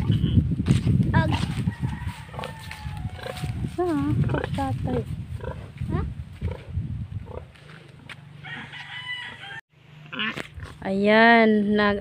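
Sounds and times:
rooster crowing: 1.6 - 3.7, 8.4 - 9.6.

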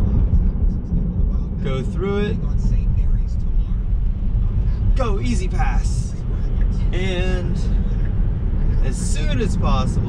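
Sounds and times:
road rumble and tyre noise: 0.0 - 10.0.

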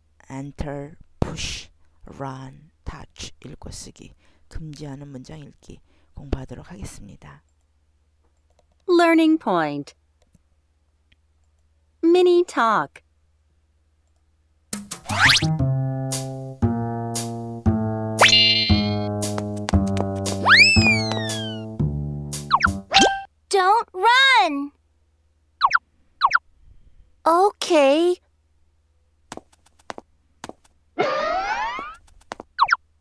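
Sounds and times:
cartoon rising pitch effect: 15.1 - 15.5, 18.2 - 19.1, 20.4 - 21.7, 22.5 - 23.3, 25.6 - 26.4, 31.0 - 32.0
cheerful children's music: 15.1 - 23.3.

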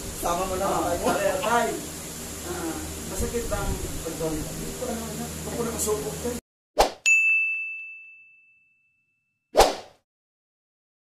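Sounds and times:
bright bell-like ding: 7.0 - 9.3
short swoosh: 9.6 - 10.0.

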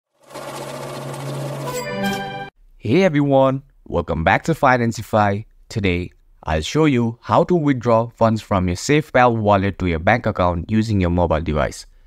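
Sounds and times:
buzzing mechanical rattle: 0.1 - 2.5
bright sustained chord: 0.2 - 2.6.

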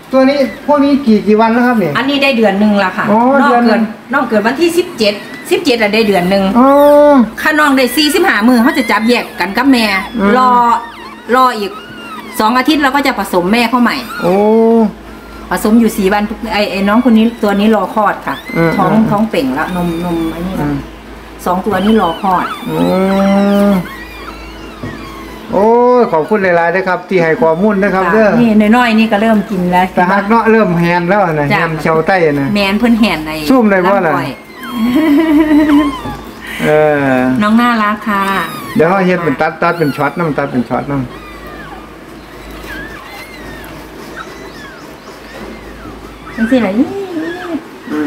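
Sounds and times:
rats squeaking: 0.0 - 48.0.

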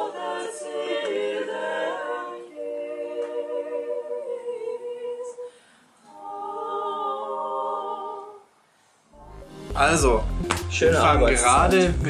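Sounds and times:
a cappella group singing chords: 0.0 - 11.6.

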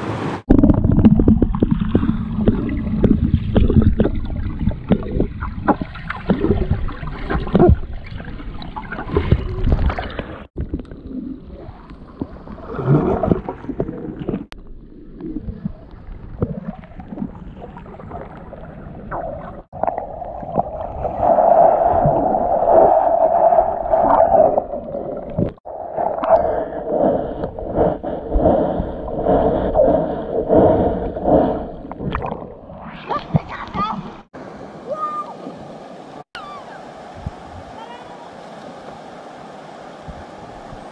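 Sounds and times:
underwater gurgling and bubbles: 0.0 - 34.6.

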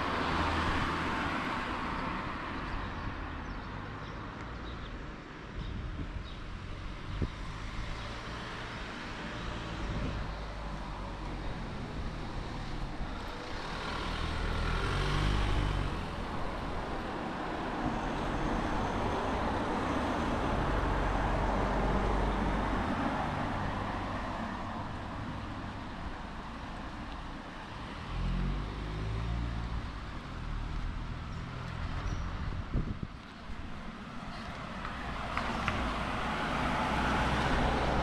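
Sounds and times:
cars and van passing: 0.0 - 38.0.

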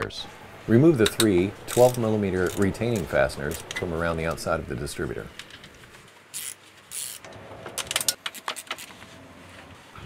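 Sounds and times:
ratchet wrench clicking: 6.3 - 8.8.

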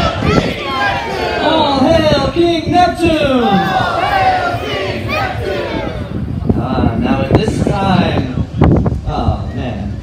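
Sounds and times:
crowd chanting in unison: 0.0 - 1.6, 3.4 - 6.3.

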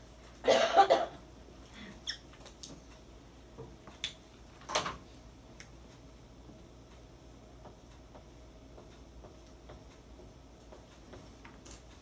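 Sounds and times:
person coughing: 0.4 - 1.2.

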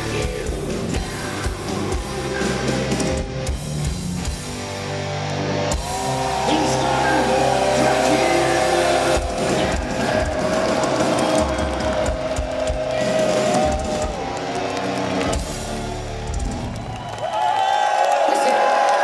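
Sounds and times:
heavy metal band playing live: 0.0 - 17.1
drum hits: 8.9 - 14.3.

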